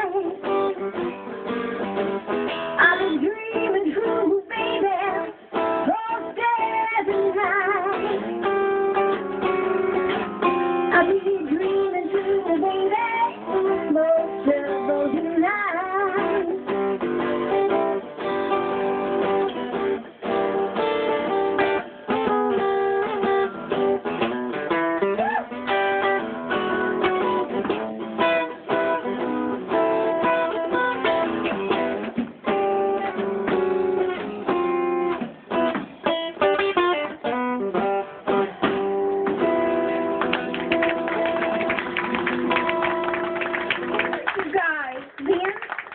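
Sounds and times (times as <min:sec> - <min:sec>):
acoustic guitar strumming: 0:00.0 - 0:44.2
drum kit: 0:30.9 - 0:36.6.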